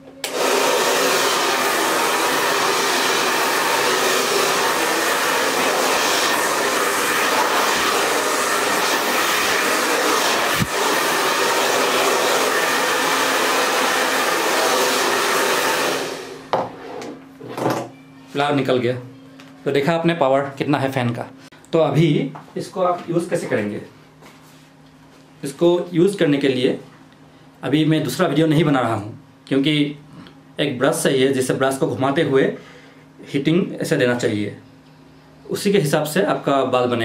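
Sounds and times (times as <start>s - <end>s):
hair dryer blowing air: 0.1s - 16.6s
hair dryer click: 0.2s - 14.2s.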